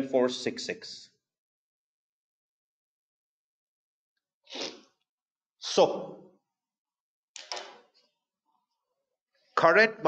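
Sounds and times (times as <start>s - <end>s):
man sneezing: 4.5s - 4.8s.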